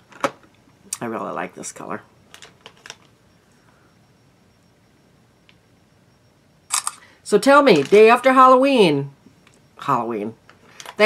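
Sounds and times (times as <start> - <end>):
phone camera shutter click: 6.7 - 7.0.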